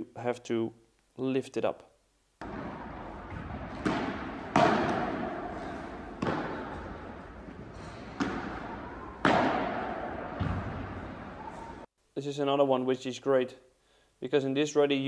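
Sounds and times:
paddles striking ball: 2.4s - 11.3s
ball bouncing: 2.4s - 11.6s.

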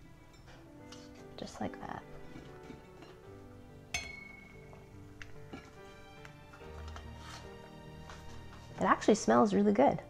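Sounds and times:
quiet background music: 0.0s - 10.0s
metallic clink of steel pot: 3.9s - 4.7s.

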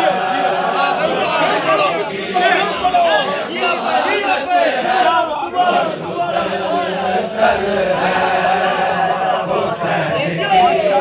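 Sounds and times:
men chanting together: 0.0s - 11.0s.

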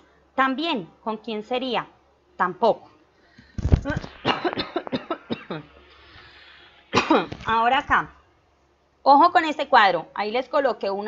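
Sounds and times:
woman coughing: 4.1s - 5.8s, 6.9s - 7.4s.

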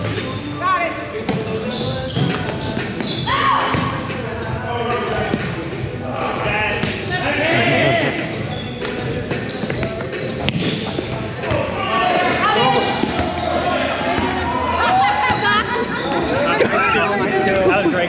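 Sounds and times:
players calling out: 1.4s - 10.4s, 11.2s - 18.0s.

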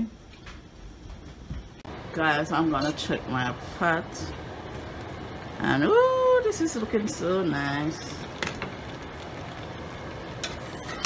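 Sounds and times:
stew simmering in a pan: 1.8s - 11.0s.

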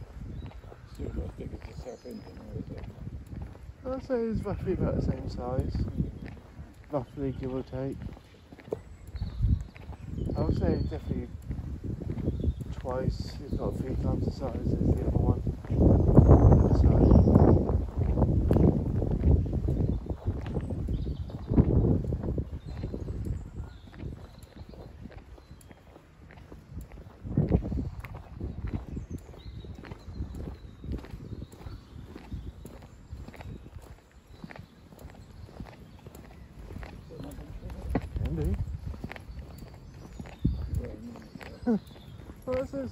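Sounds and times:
footsteps on paved path: 0.0s - 42.9s
low rumbles on microphone: 0.0s - 42.9s.

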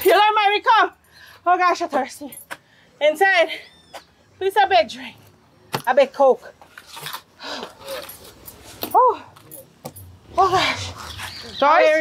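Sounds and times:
woman breathing heavily: 7.3s - 8.1s.

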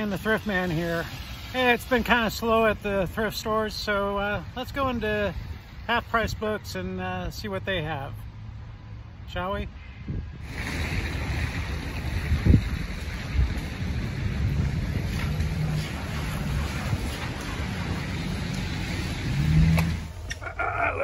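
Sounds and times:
wind buffeting microphone: 10.0s - 20.6s.

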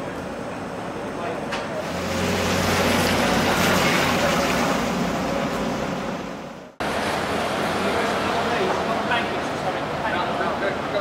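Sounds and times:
street traffic: 0.0s - 11.0s
engine running: 1.8s - 8.8s.

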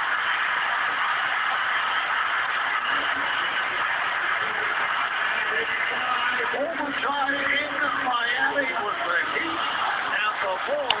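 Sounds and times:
arena crowd noise: 0.0s - 11.0s
commentators talking and laughing: 0.0s - 11.0s.

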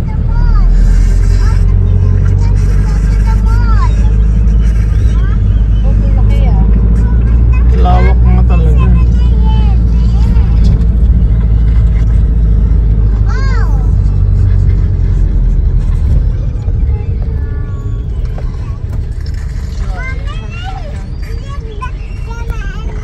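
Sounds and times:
car engine rumble: 0.0s - 23.0s
road noise inside car: 0.0s - 23.0s.

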